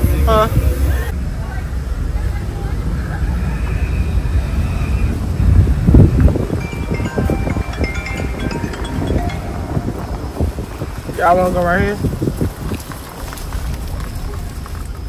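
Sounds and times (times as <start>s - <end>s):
wind buffeting microphone: 4.4s - 15.0s.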